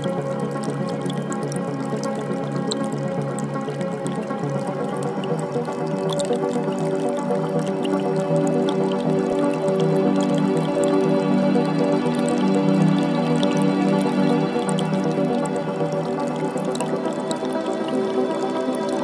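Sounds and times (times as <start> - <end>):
calm ambient music: 0.0 - 19.0
creek trickling and dripping: 0.0 - 19.0.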